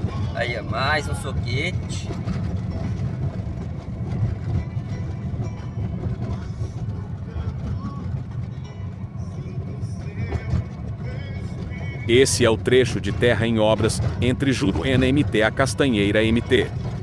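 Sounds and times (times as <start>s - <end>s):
car driving on dirt road: 0.0s - 17.0s.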